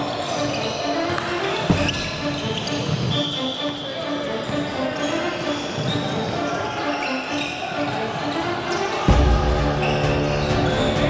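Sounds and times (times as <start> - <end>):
music with heavy bass: 9.1 - 11.0.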